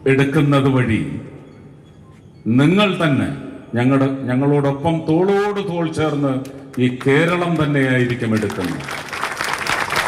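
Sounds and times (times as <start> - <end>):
man's amplified voice: 0.0 - 1.4, 2.4 - 8.9
audience applause: 7.0 - 10.0.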